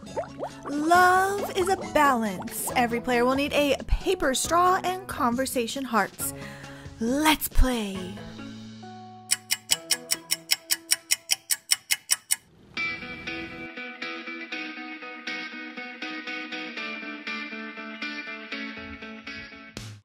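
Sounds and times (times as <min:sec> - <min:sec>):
music with plucked notes: 0:00.0 - 0:05.2, 0:12.8 - 0:19.9
rapid sharp ticks: 0:09.3 - 0:12.5.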